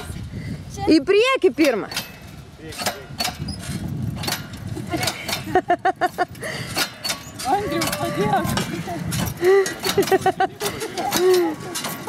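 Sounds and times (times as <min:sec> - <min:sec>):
rail cart rolling on track: 0:01.4 - 0:12.0
sharp clicks from wheels and rails: 0:01.6 - 0:12.0.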